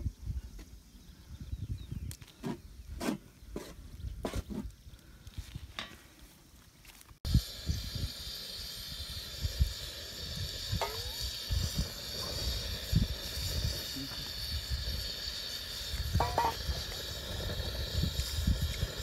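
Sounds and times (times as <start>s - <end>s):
eggs frying in a pan: 7.3s - 19.0s.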